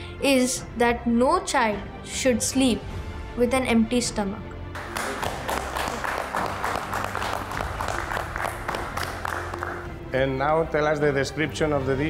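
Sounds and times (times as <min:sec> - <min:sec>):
background music: 0:00.0 - 0:12.0
people clapping: 0:04.8 - 0:10.0.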